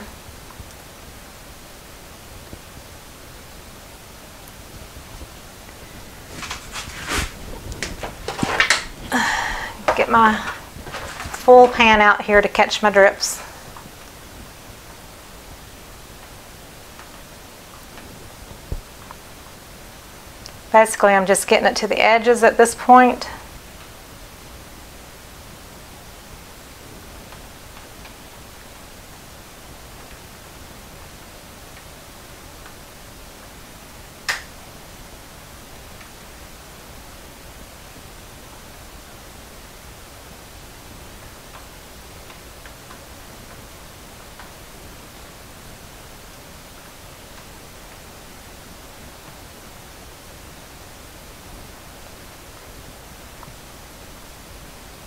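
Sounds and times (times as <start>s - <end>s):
low background hiss: 0.0s - 55.0s.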